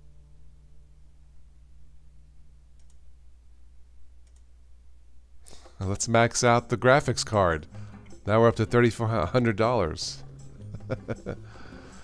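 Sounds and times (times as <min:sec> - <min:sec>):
low steady hum: 0:00.0 - 0:12.0
computer mouse clicks: 0:02.8 - 0:03.0, 0:04.2 - 0:04.5
man talking: 0:05.8 - 0:07.7, 0:08.3 - 0:10.2.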